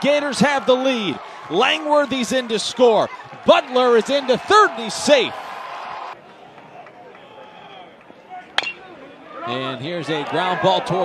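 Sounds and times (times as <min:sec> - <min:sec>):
ballpark crowd noise: 0:00.0 - 0:11.0
metal bat hitting ball: 0:08.6 - 0:09.0.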